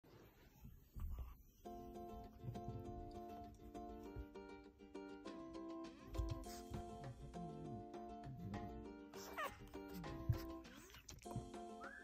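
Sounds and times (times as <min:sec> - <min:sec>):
plucked-string music: 0:01.6 - 0:12.0
dog whining: 0:09.2 - 0:11.4.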